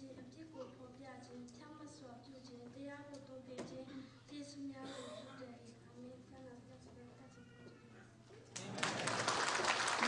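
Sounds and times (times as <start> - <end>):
faint high voice: 6.8 - 8.2.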